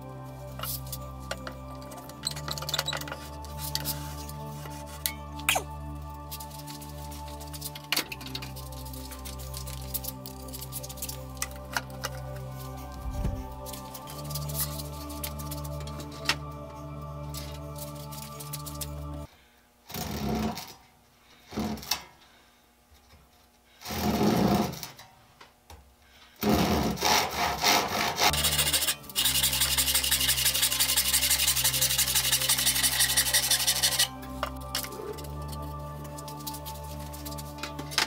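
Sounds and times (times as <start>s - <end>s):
background music: 0.0s - 19.4s, 26.4s - 38.0s
handsaw cutting wood: 26.4s - 34.2s.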